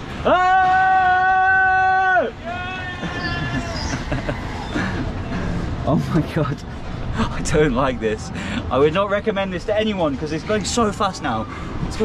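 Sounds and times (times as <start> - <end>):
fairground ride rumbling: 0.0 - 12.0
man yelling: 0.2 - 3.7.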